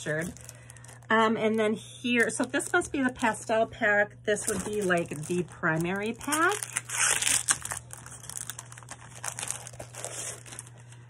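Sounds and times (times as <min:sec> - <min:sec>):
plastic packaging crinkling: 0:00.0 - 0:03.5, 0:04.3 - 0:11.0.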